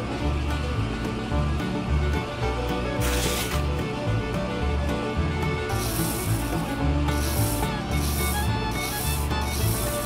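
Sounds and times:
beans sliding into basket: 3.0 - 3.7, 5.7 - 10.0
sand rasping in toy sieve: 3.0 - 3.7, 5.7 - 10.0.

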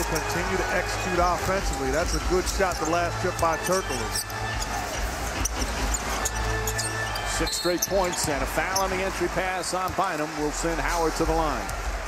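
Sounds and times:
arena crowd noise: 0.0 - 12.0
music playing: 0.0 - 12.0
sneakers squeaking on court: 1.1 - 10.0.

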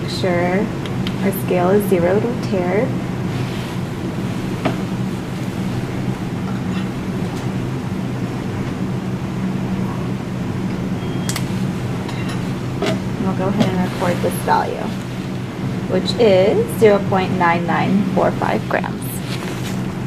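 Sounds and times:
room ventilation hum: 0.0 - 20.0.

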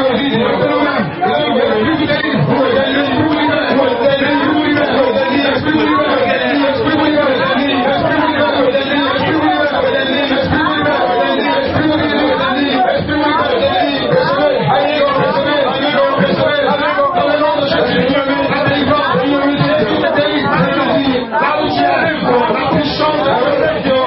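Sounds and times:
crowd babble: 0.0 - 24.0.

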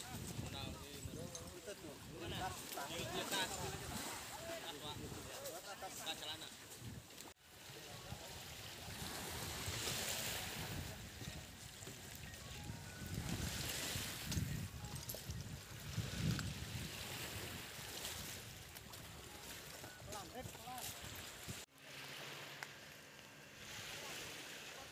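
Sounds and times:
wind buffeting microphone: 0.0 - 4.2, 8.8 - 21.6
small waves on shoreline: 0.0 - 24.9.

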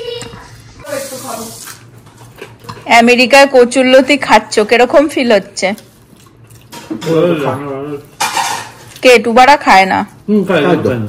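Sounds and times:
voices at a meal table: 0.0 - 11.0
dishes and spoons clinking: 8.1 - 9.0.

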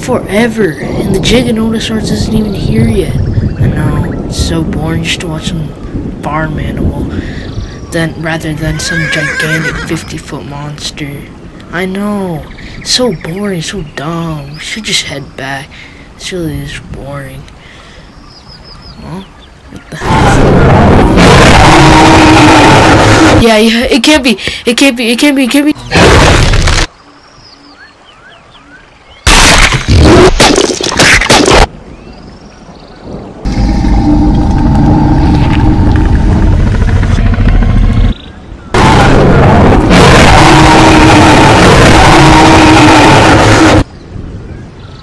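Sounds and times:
dinosaur roar: 19.9 - 23.4, 33.4 - 43.9.

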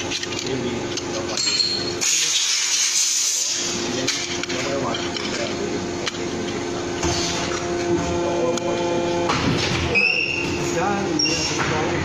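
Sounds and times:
metal press humming: 0.0 - 12.0.

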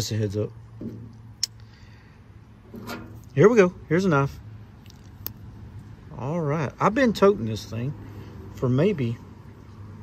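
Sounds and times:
tube tapping on metal panel: 0.8 - 1.2.

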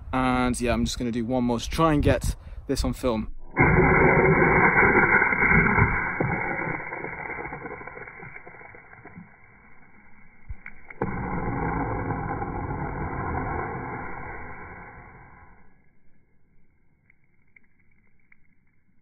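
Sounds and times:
water rocket jet rushing: 3.5 - 9.4, 10.8 - 15.7.

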